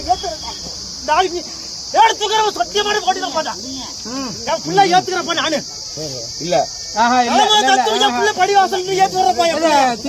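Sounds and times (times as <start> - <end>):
insects chirring: 0.0 - 10.0
men calling out in a crowd: 0.0 - 10.0.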